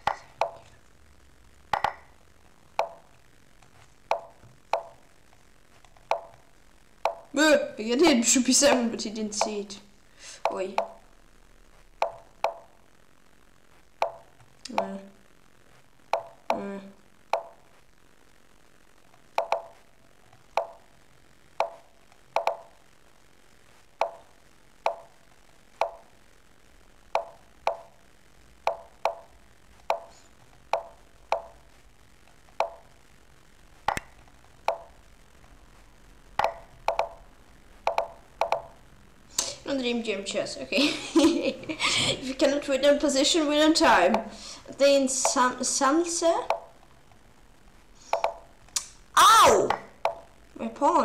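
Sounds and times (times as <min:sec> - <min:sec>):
chess pieces plopping on board: 0:01.7 - 0:02.1.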